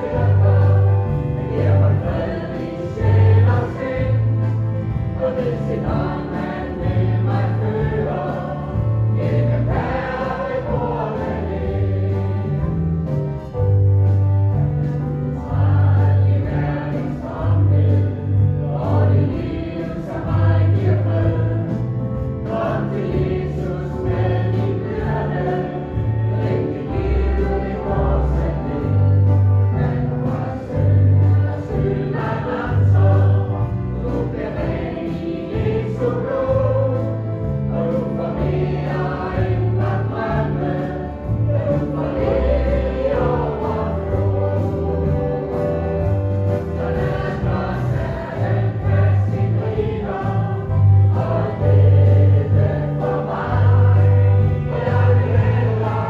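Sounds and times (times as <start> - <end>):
choir singing gospel: 0.0 - 56.0
instrumental accompaniment: 0.0 - 56.0.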